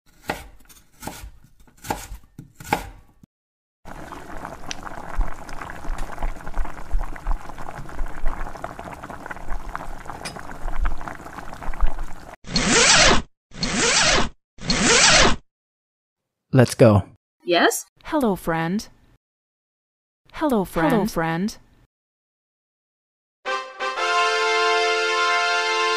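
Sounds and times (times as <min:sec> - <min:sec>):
knife chopping on a board: 0:00.1 - 0:03.2.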